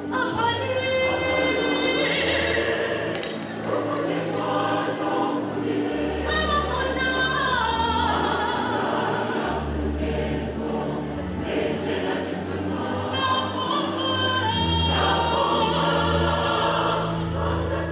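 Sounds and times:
choir singing gospel: 0.0s - 17.9s.

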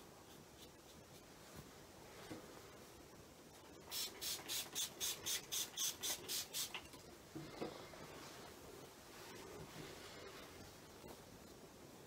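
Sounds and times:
spray bottle hissing sprays: 3.9s - 6.8s.

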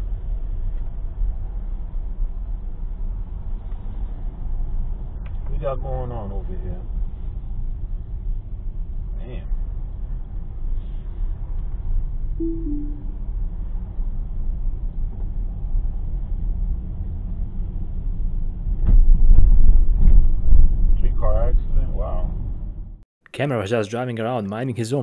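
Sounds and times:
low two-note falling tone: 12.4s - 13.3s.

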